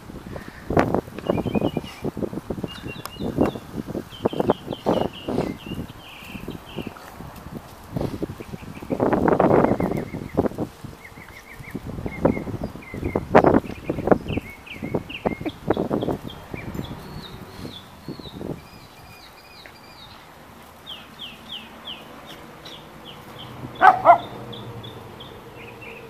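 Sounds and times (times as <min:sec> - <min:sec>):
small birds chirping: 0:00.3 - 0:26.0
dogs scuffling on gravel: 0:01.2 - 0:24.4.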